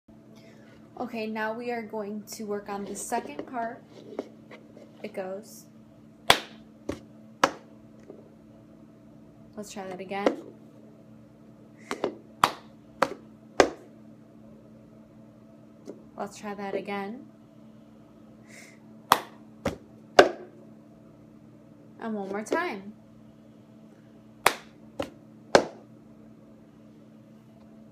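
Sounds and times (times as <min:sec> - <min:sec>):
cup scraping on tabletop: 0:02.8 - 0:05.1
cup striking a tabletop: 0:20.2 - 0:20.5, 0:25.6 - 0:25.8
hands clapping: 0:24.5 - 0:24.8.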